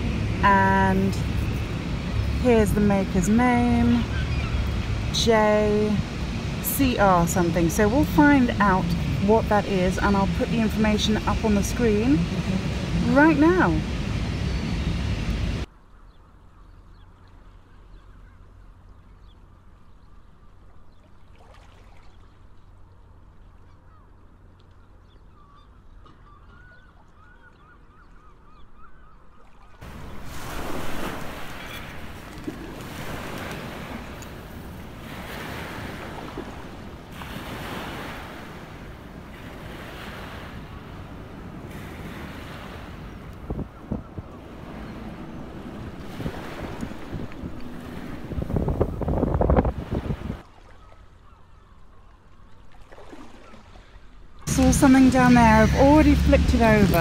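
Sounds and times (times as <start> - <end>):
river water washing at shore: 21.0 - 23.7, 29.5 - 57.0
faint bird calls: 23.5 - 29.8, 50.6 - 52.4
wind buffeting microphone: 29.8 - 50.4, 54.4 - 57.0.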